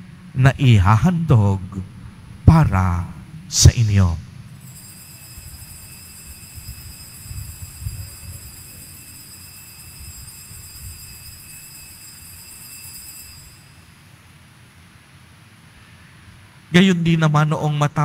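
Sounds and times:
faint low rumble: 0:00.0 - 0:04.8
altar bells ringing: 0:04.6 - 0:14.0.

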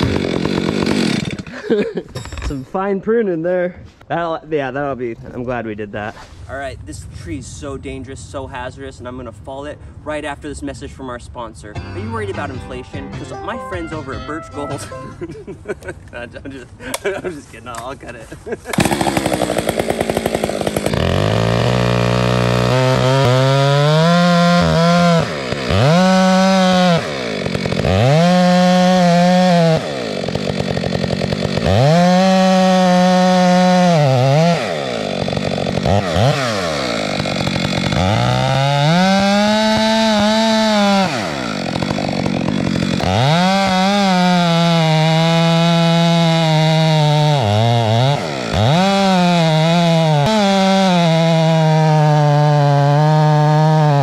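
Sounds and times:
chainsaw cutting wood: 0:00.0 - 0:02.6, 0:18.6 - 0:54.0.

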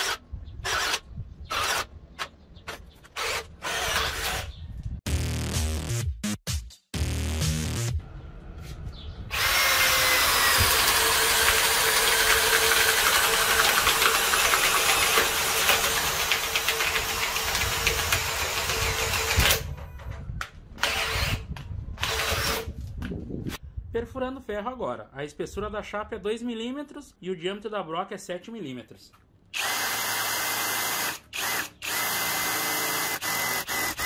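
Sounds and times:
cordless drill boring into wood: 0:00.0 - 0:01.9, 0:03.2 - 0:04.5, 0:09.3 - 0:19.6, 0:20.8 - 0:21.4, 0:22.0 - 0:22.7, 0:29.6 - 0:34.0.

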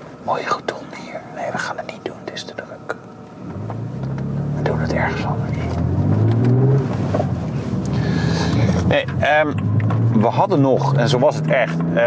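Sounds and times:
car engine running while driving: 0:03.2 - 0:12.0.

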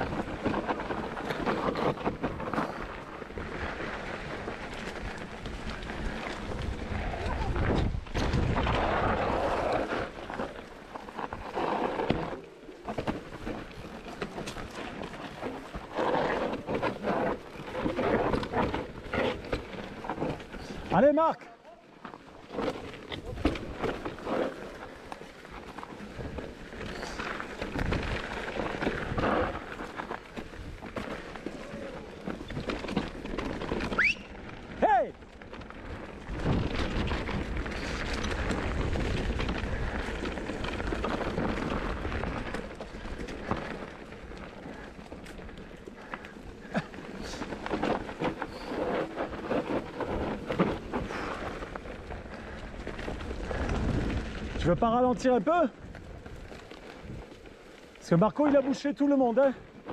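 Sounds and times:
bike rattling and clicking: 0:00.0 - 0:59.9
bike tyres rumbling over dirt: 0:00.0 - 0:59.9
wind buffeting microphone: 0:03.3 - 0:10.2, 0:35.4 - 0:44.5, 0:46.6 - 0:55.0.

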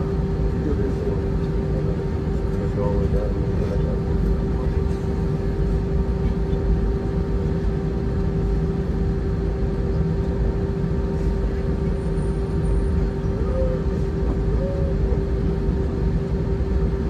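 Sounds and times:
jet engines humming: 0:00.0 - 0:17.0
low rumble of aircraft rolling: 0:00.0 - 0:17.0.

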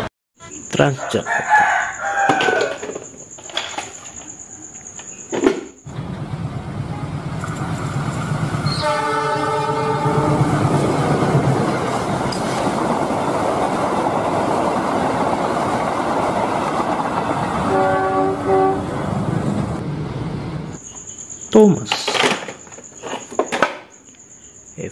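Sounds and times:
train rumbling on rails: 0:05.8 - 0:20.8
train horn: 0:06.7 - 0:07.6, 0:08.6 - 0:11.5, 0:17.3 - 0:19.4.

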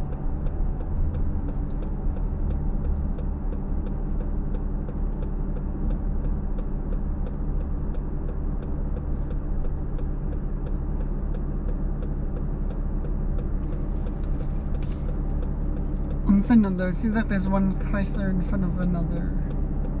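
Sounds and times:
car engine idling: 0:00.0 - 0:20.0
turn signal ticking: 0:00.0 - 0:20.0.

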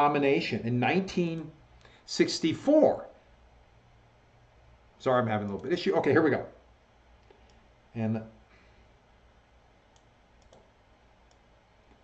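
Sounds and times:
faint computer clicks: 0:05.4 - 0:05.8, 0:07.2 - 0:07.6, 0:09.9 - 0:12.0.

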